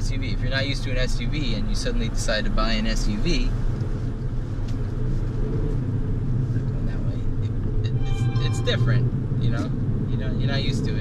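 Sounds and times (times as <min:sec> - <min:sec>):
car engine and road noise: 0:00.0 - 0:11.0.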